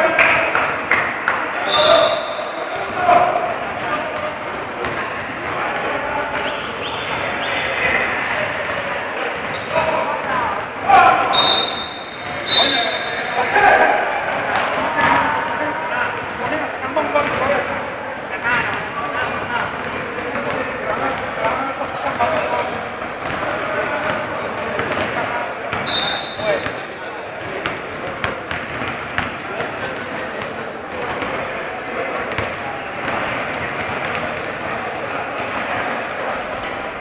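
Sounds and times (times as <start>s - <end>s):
players' voices: 0.0s - 37.0s
referee's whistle blasts: 1.6s - 2.8s, 11.2s - 13.5s, 25.8s - 26.8s
basketball bouncing on gym floor: 17.2s - 17.8s, 22.1s - 26.8s, 27.4s - 31.4s, 32.3s - 34.8s.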